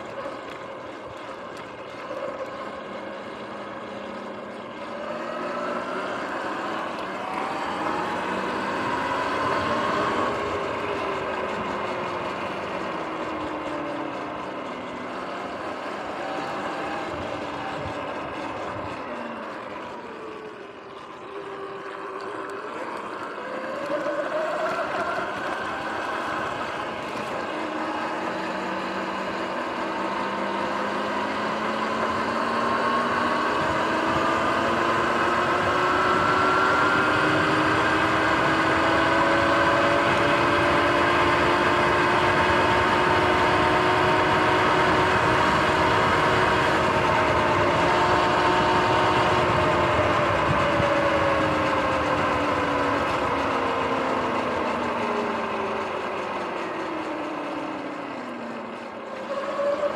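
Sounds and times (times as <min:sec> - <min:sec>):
electric motor whining: 0:00.0 - 0:59.9
wind noise: 0:32.0 - 0:54.4.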